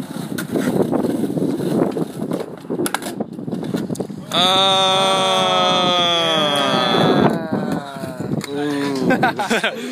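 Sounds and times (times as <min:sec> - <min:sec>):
skateboard clacks: 0:00.0 - 0:04.2
skateboard wheels rolling on concrete: 0:00.0 - 0:09.9.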